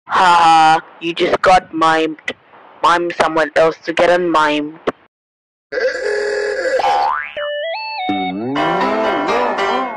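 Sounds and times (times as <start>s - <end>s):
electronic tones stepping upward: 7.4s - 9.9s.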